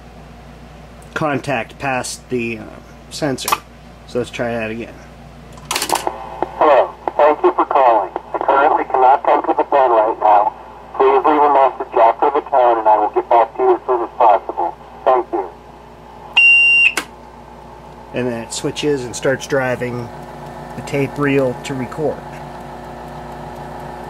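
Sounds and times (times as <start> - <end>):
recorded voice through small speaker: 6.4 - 15.6
high steady beep: 16.4 - 17.0
answering machine switch click: 16.8 - 17.2.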